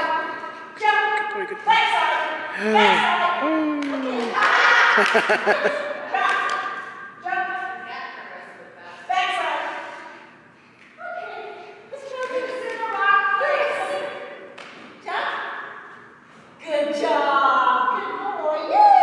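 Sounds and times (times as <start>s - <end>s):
indistinct talking in a hall: 0.0s - 19.0s.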